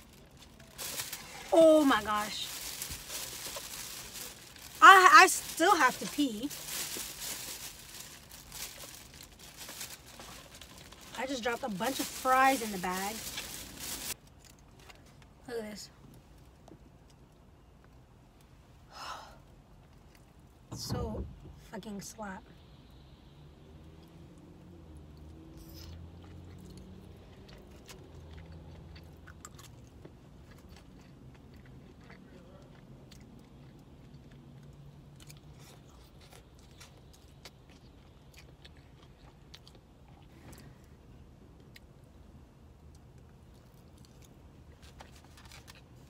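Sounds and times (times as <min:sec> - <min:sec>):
plastic bag rustling: 0:00.0 - 0:14.2
low steady hum: 0:00.0 - 0:46.0
person chewing noodles: 0:25.6 - 0:40.3.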